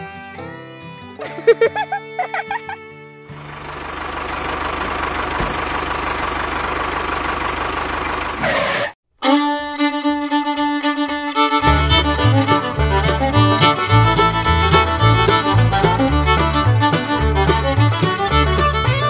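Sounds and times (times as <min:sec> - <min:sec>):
fiddle-led bluegrass music: 0:00.0 - 0:03.5, 0:09.2 - 0:19.0
small tractor motor running: 0:03.3 - 0:08.9
bass line: 0:11.6 - 0:19.0.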